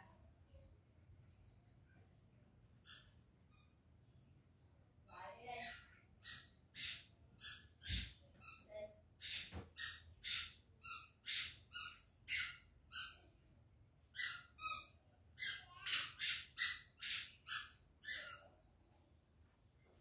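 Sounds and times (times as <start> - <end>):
bird chirping: 0.1 - 20.0.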